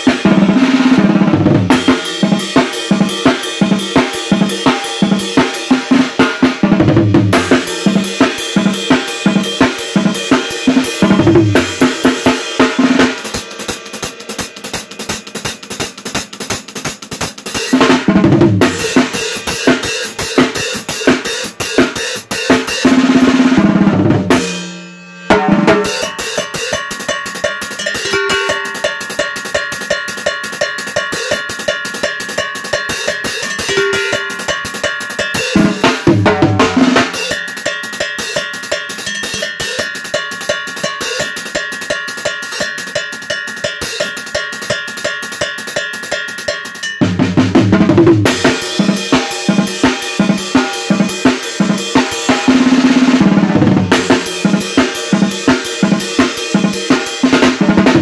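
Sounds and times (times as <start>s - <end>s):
drum set with cowbell: 0.0s - 58.0s.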